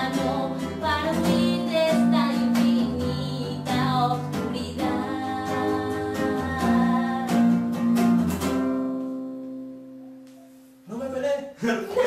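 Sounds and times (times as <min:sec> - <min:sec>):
woman singing: 0:00.0 - 0:09.8
strummed classical guitar: 0:00.0 - 0:10.2.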